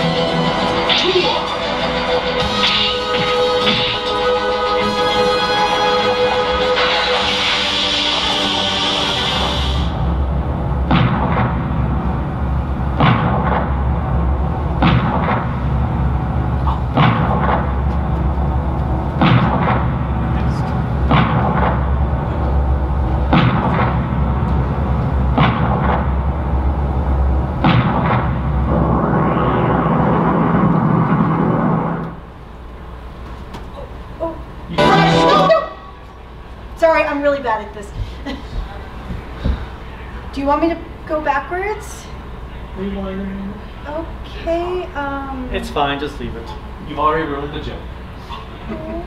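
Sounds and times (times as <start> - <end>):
movie soundtrack over loudspeakers: 0.0 - 33.1, 34.6 - 36.0
steady low drone: 0.0 - 37.0
heavy booming hit: 9.8 - 32.0.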